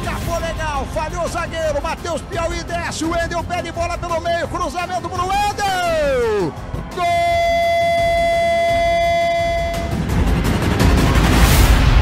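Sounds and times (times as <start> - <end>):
air horn long note: 7.0 - 10.2.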